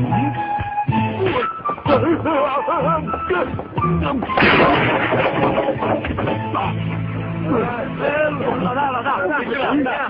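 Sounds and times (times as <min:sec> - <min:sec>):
loud crash: 0:04.4 - 0:06.6.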